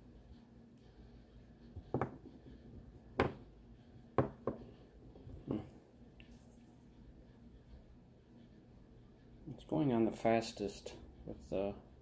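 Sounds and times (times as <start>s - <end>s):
light knocks on plastic table: 1.8s - 2.3s, 3.2s - 3.4s, 4.2s - 4.6s.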